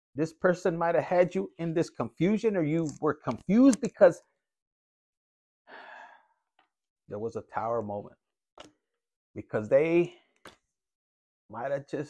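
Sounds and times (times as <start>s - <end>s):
man breathing out: 5.7s - 6.3s.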